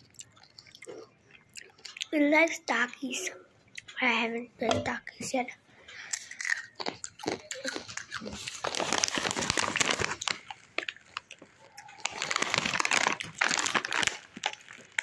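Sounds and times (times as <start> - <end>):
chip bag crinkling: 6.2 - 15.0.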